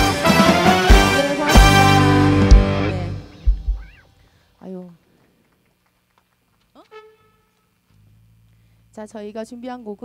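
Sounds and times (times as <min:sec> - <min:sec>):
loud accented band hit: 0:00.0 - 0:03.8
live rock band: 0:00.0 - 0:04.0.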